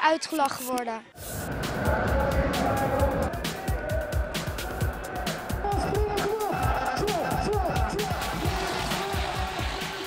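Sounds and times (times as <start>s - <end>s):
upbeat background music: 0.4s - 10.0s.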